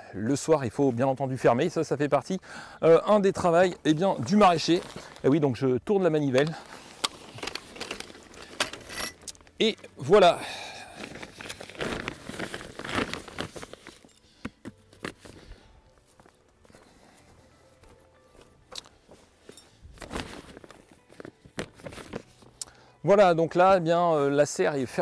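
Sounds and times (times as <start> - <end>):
rubber boot footsteps on straw: 3.8 - 5.4, 14.7 - 22.6.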